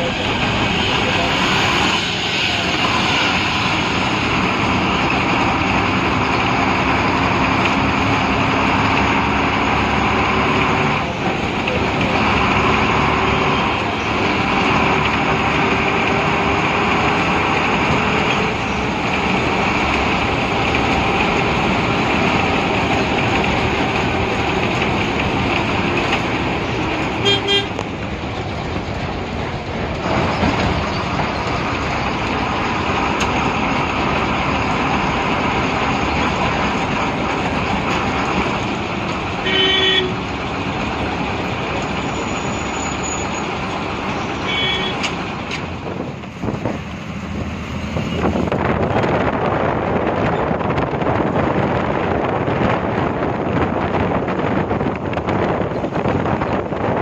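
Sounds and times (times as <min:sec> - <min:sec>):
bus engine and road noise: 0:00.0 - 0:57.0
horn honks: 0:27.2 - 0:27.8, 0:39.4 - 0:40.2, 0:44.4 - 0:45.2.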